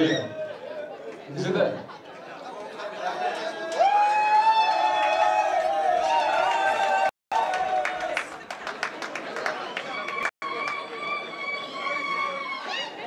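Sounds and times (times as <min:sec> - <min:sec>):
crowd chatter in a hall: 0:00.0 - 0:03.8, 0:08.1 - 0:13.0.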